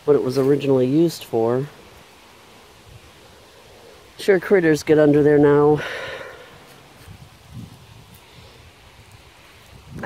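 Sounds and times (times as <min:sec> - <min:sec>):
wind on microphone: 0:06.8 - 0:10.0.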